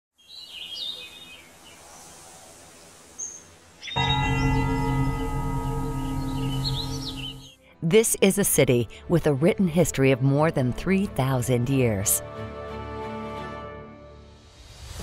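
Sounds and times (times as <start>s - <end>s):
birds chirping: 0.2s - 7.6s
deep sustained musical tone: 4.0s - 7.6s.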